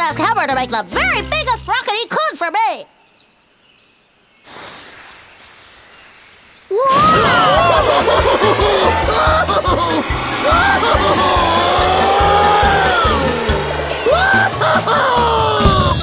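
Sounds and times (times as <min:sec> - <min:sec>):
fast cartoon music: 0:00.0 - 0:01.8, 0:07.0 - 0:16.0
rocket whoosh: 0:06.7 - 0:14.9.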